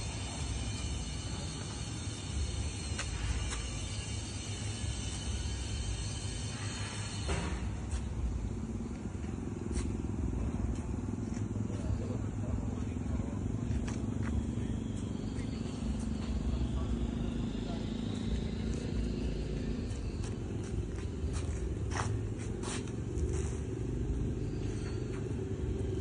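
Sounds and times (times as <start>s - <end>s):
tractor diesel engine running: 0.0s - 26.0s.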